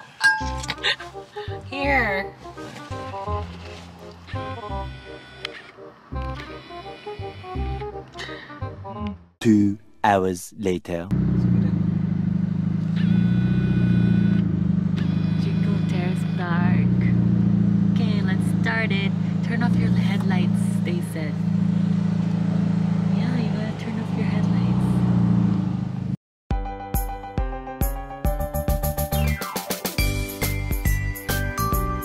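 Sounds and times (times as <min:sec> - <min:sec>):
car engine and road hum: 0:00.4 - 0:08.2, 0:11.1 - 0:26.2.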